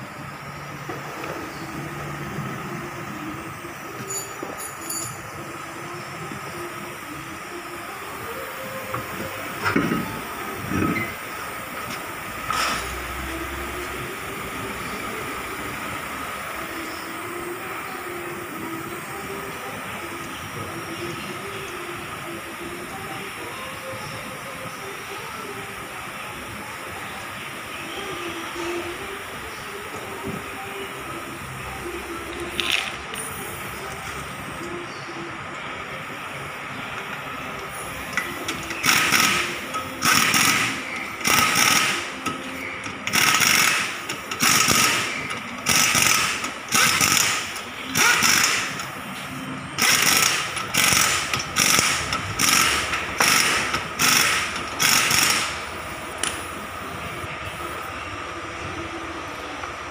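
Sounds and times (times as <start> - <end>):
steady background noise: 0.0 - 59.9
ratchet wrench clicking: 38.1 - 48.9, 49.8 - 55.6.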